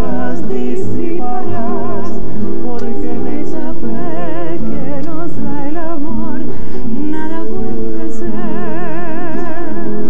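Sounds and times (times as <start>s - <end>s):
acoustic guitars: 0.0s - 10.0s
woman singing a bolero: 0.0s - 10.0s.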